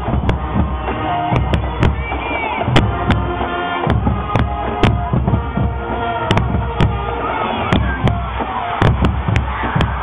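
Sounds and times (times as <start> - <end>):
marching band playing: 0.0 - 10.0.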